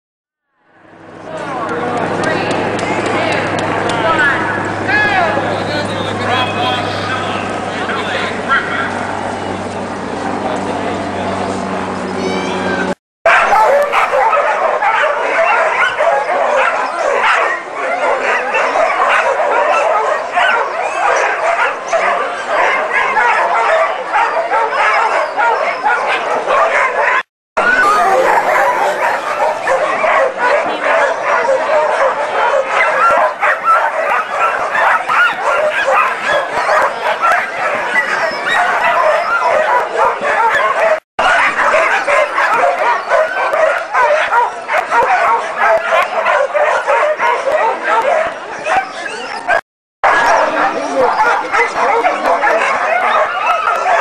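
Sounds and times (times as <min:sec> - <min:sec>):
sled dogs barking and yipping: 0:01.1 - 0:10.4, 0:11.6 - 0:54.0.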